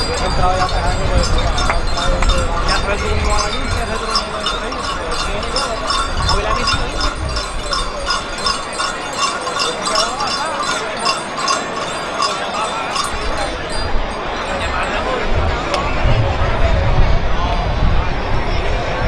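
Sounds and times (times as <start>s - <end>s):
mule walking: 0.0s - 14.9s
harness clinking: 0.0s - 15.2s
crowd chatter: 0.0s - 19.0s.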